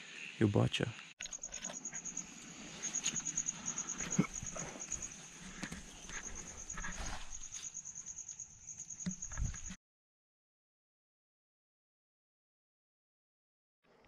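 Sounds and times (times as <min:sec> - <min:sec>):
insect high-pitched trill: 0:00.0 - 0:09.8.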